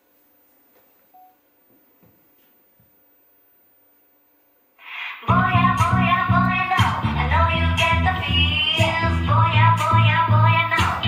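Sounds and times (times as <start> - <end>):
faint hum: 0.0 - 11.0
short beep: 1.1 - 1.4
loud dance-pop music: 5.2 - 11.0.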